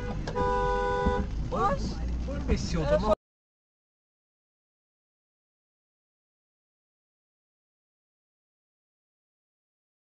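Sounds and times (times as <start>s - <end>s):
car horn honking: 0.0s - 1.4s.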